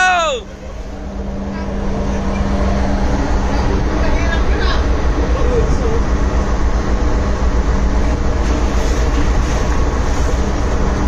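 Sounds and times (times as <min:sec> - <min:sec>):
ship engine rumble: 0:00.0 - 0:11.0.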